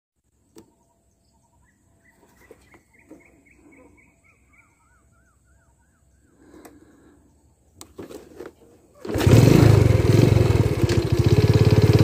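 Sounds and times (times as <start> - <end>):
bird chirping: 0.2 - 8.2
whistled bird notes: 0.7 - 7.4.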